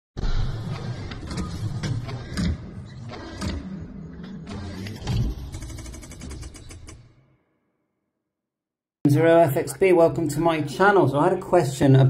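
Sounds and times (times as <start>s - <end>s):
mechanical whirs: 0.2s - 7.5s.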